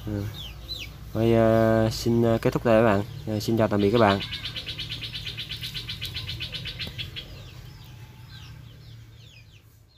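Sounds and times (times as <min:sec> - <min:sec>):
small birds trilling and chirping: 0:00.0 - 0:09.9.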